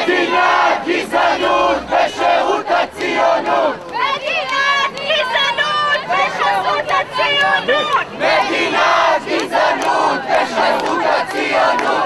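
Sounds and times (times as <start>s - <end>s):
crowd shouting a chant: 0.0s - 12.0s.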